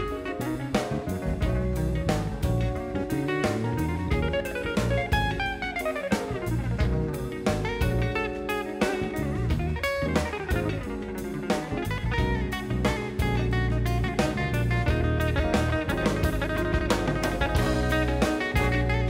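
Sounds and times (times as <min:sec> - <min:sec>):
big band music: 0:00.0 - 0:19.0
electric guitar lead lines: 0:00.0 - 0:19.0.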